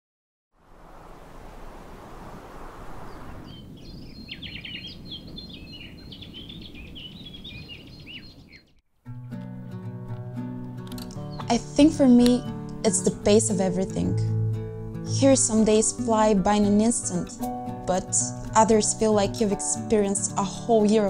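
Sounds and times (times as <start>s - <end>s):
steady rushing background: 0.8s - 4.0s
small birds chirping: 2.9s - 8.8s, 11.1s - 11.6s.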